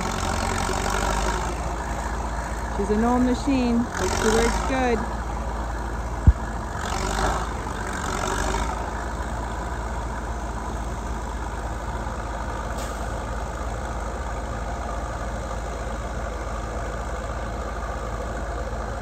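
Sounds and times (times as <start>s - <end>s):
bulldozer engine idling: 0.0s - 19.0s.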